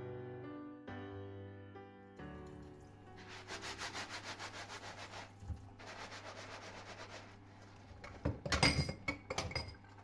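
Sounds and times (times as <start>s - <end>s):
soft piano music: 0.0s - 4.2s
gloved hand scrubbing ceramic plate: 3.1s - 7.9s.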